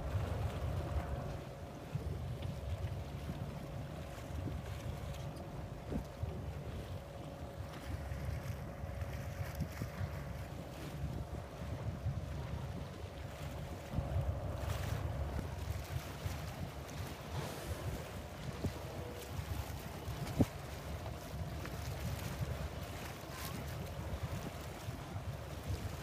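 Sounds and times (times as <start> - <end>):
faint mechanical hum: 0.0 - 26.0
wind buffeting microphone: 0.0 - 26.0.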